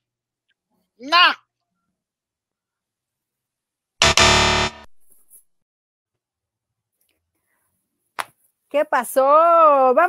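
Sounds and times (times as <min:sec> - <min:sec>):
loud musical tone: 0:04.0 - 0:04.9.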